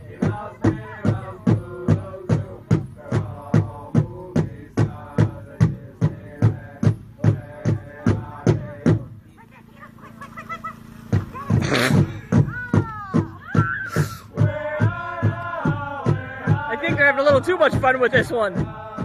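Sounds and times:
people singing: 0.0 - 9.3, 12.0 - 19.0
drum beaten steadily: 0.0 - 19.0
high calls and shouts: 9.6 - 19.0.

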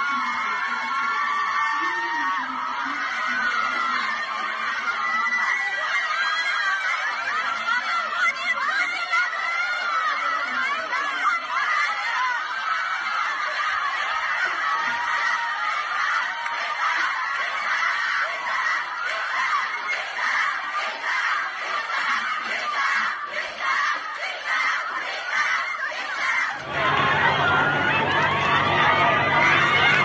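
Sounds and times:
girls shouting and laughing: 0.0 - 30.0.

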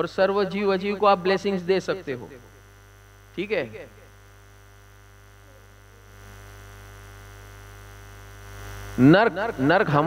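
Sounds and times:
buzzy mains hum: 0.0 - 10.0.

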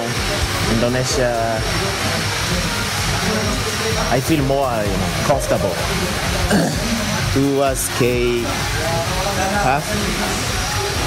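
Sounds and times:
faint music: 0.0 - 11.0
steady background noise: 0.0 - 11.0.

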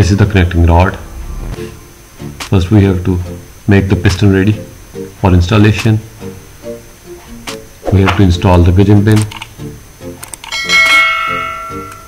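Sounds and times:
soft background music: 0.0 - 12.0
bright bell chime: 10.5 - 12.0.

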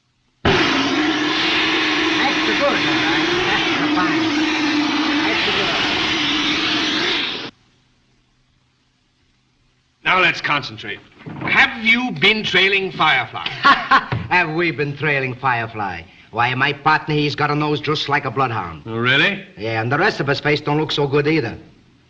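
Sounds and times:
blowtorch flame hissing: 0.4 - 7.6.

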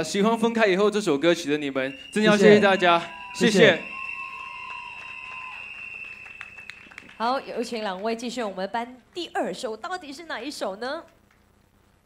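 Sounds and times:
crowd noise: 1.9 - 5.6
light clapping: 3.9 - 8.2.

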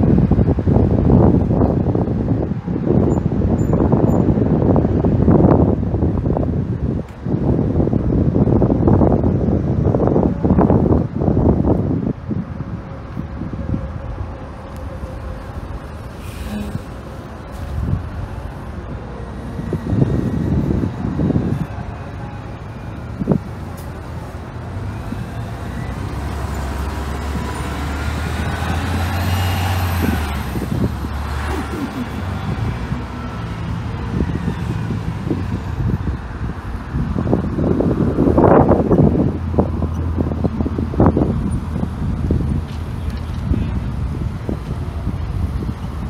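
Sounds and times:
traffic noise: 0.0 - 46.0
vehicle passing with engine whine: 10.1 - 46.0.

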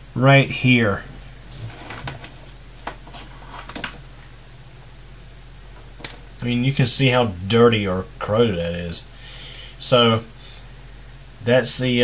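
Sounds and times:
low steady hum: 0.0 - 12.0
handling clicks and rustles: 0.8 - 4.3.

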